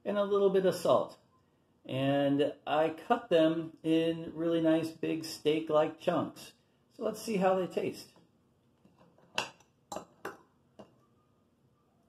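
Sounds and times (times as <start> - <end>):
metal fork clinking on dish: 9.4 - 11.0.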